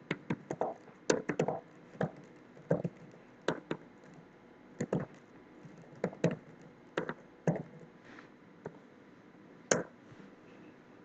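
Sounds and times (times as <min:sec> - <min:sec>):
computer keyboard typing: 0:00.0 - 0:04.2, 0:04.8 - 0:07.8.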